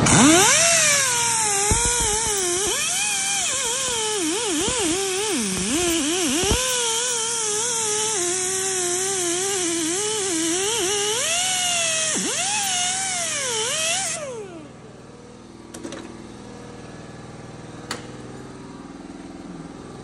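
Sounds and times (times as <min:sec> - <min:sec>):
pneumatic grinder wire brush whine: 0:00.0 - 0:15.0.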